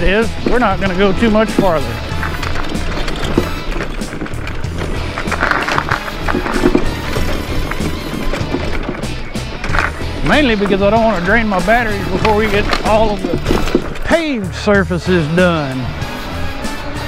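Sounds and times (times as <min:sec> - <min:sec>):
background music with steady beat: 0:00.0 - 0:17.0
mobility scooter rattling on dirt: 0:00.0 - 0:17.0.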